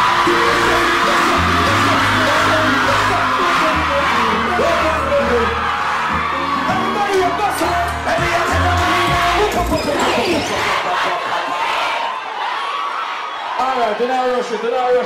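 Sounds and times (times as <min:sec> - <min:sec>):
dancehall music with bass: 0:00.0 - 0:10.5
crowd screaming and cheering: 0:00.0 - 0:15.0.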